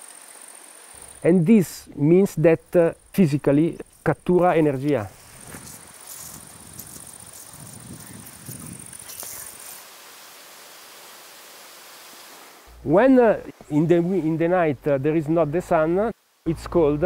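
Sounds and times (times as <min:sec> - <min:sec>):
thin high-pitched buzz: 0:00.0 - 0:09.8
low outdoor hiss: 0:00.0 - 0:17.0.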